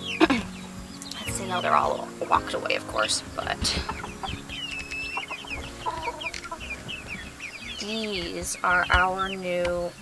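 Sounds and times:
chicken clucking: 0:00.0 - 0:09.4
chicks cheeping: 0:00.0 - 0:10.0.

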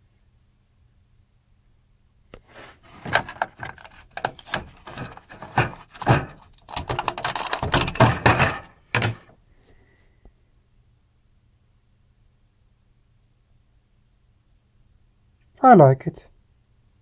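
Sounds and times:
metal parts clicking and rattling: 0:03.0 - 0:09.2.

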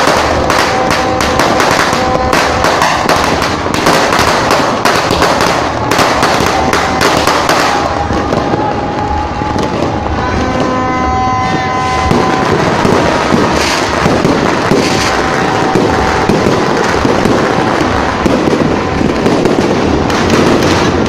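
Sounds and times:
firecrackers crackling and popping: 0:00.0 - 0:21.0
horn-like tone: 0:00.3 - 0:02.6, 0:06.4 - 0:19.2.

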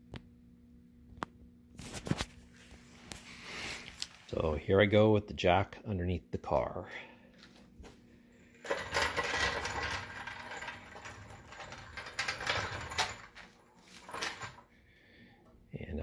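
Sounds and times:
floor jack rattling on concrete: 0:08.6 - 0:14.6.

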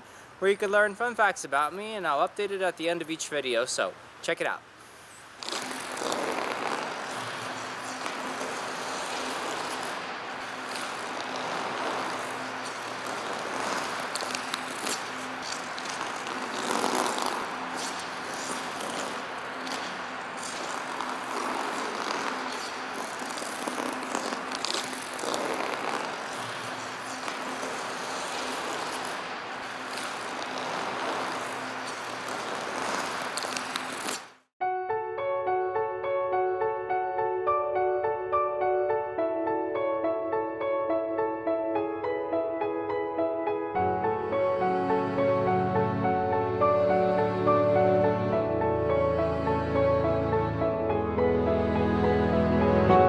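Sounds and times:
skate blades gliding on ice: 0:05.4 - 0:34.5.

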